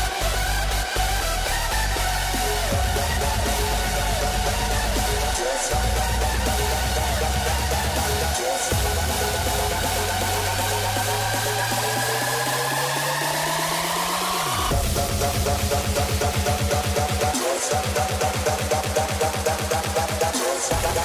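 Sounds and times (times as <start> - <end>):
hardstyle electronic dance music: 0.0 - 21.0.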